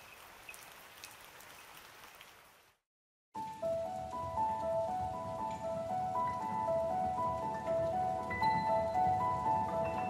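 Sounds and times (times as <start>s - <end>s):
raindrop clicks: 0.0s - 2.7s
rain pattering: 0.0s - 2.8s, 3.4s - 10.0s.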